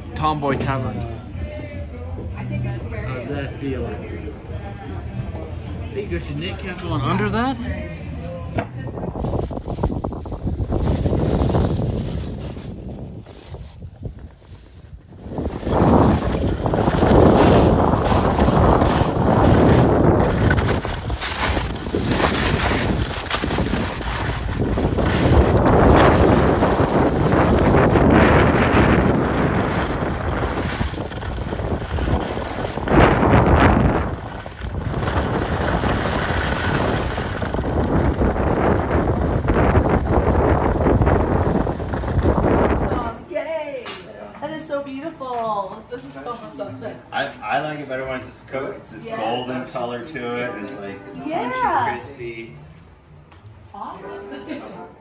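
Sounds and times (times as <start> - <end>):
wind rushing over microphone: 8.5 - 43.5
skis scraping over snow: 9.0 - 43.1.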